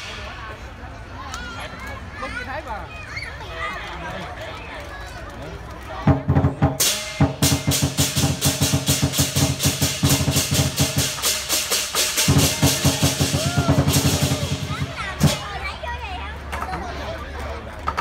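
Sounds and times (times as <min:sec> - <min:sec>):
drum roll: 0:06.0 - 0:15.7
crashing cymbals: 0:06.8 - 0:15.4.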